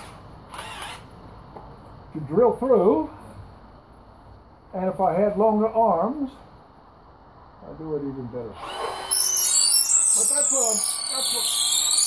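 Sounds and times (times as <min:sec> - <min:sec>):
cordless drill burst: 0:00.0 - 0:01.1, 0:08.6 - 0:12.0.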